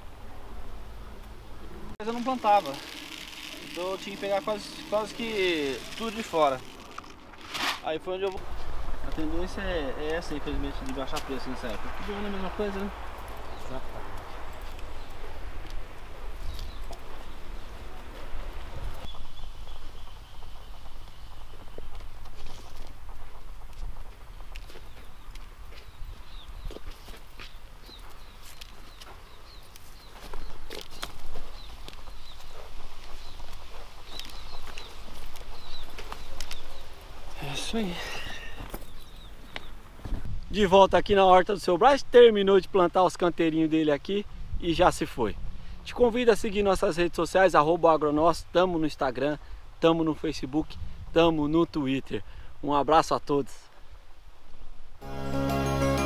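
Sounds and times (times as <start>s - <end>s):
wind rumble on microphone: 8.4s - 27.0s, 39.2s - 41.3s, 44.1s - 45.9s, 50.6s - 51.2s.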